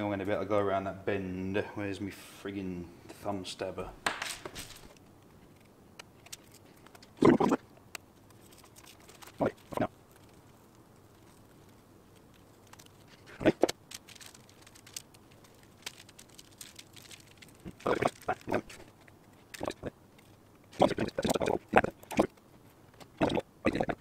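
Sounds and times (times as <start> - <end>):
masking tape ripping: 11.2 - 19.8.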